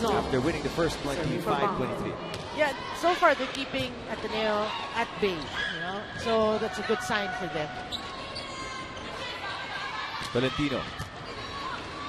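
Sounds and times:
indoor arena crowd noise: 0.0s - 12.0s.

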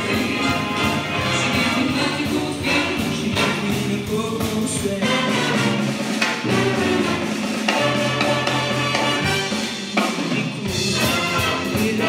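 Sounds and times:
big band playing: 0.0s - 12.0s.

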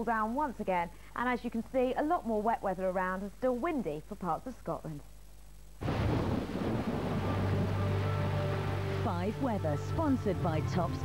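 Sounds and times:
low hum: 5.3s - 11.0s
sustained music chords: 6.8s - 11.0s.

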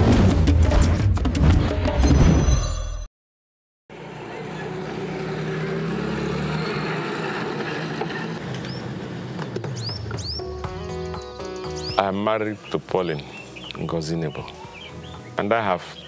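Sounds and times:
crowd noise: 3.9s - 5.7s
traffic: 3.9s - 10.4s
bird chirps: 9.5s - 16.0s.

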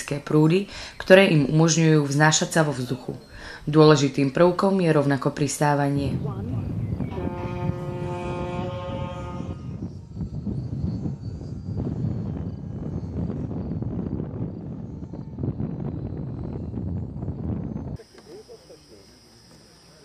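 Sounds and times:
wind rumble on microphone: 0.0s - 18.0s
model glider motors whining: 6.2s - 20.0s.

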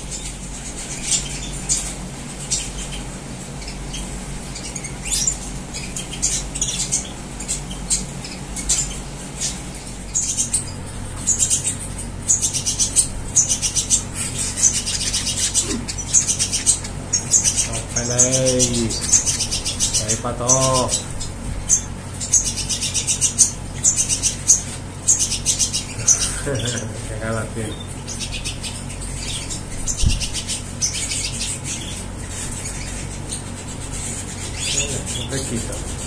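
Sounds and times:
small birds chirping and singing: 0.0s - 36.0s.

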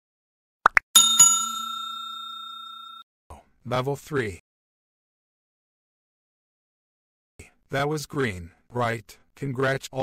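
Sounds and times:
small bell ringing: 1.0s - 3.0s.

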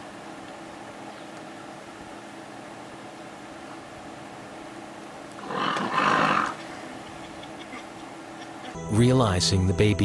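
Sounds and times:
lion growling: 5.4s - 6.6s.

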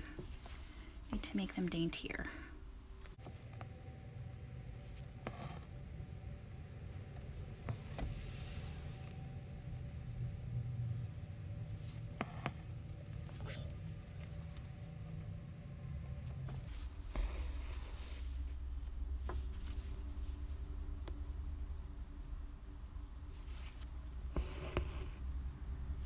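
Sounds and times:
steady low hum: 0.0s - 26.0s
needle and thread rasping through fabric: 4.8s - 5.8s, 11.7s - 13.6s.

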